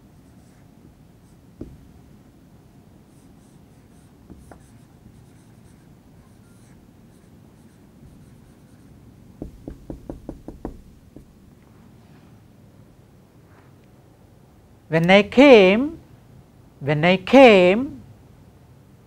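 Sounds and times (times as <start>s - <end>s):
pen knocking on board: 1.6s - 1.9s, 9.4s - 11.4s
marker squeaking on whiteboard: 3.2s - 10.1s
pen tapping dots: 9.4s - 11.4s.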